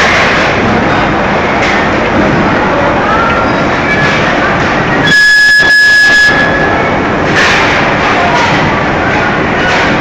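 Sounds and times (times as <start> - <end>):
conveyor machinery running: 0.0 - 10.0
loud high steady tone: 4.9 - 7.2.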